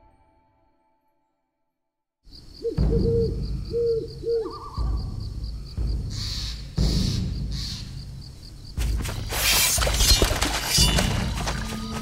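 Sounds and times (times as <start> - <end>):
owl hooting: 2.6 - 5.0.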